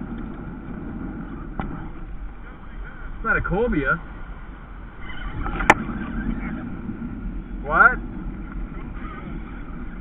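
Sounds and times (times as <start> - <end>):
wind and water rumble: 0.0 - 10.0.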